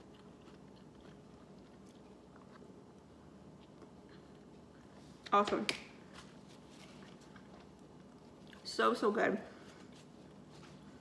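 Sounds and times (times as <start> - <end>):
faint chewing: 0.0 - 5.3, 6.1 - 8.7.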